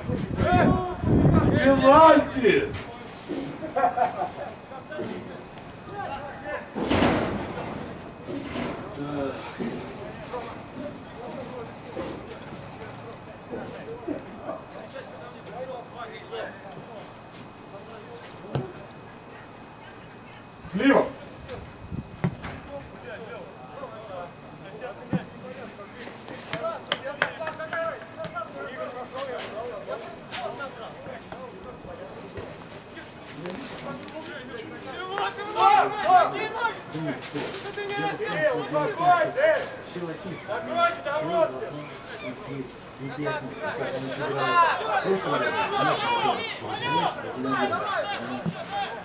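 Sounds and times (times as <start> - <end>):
men talking: 0.0 - 49.0
voices calling out: 0.0 - 49.0.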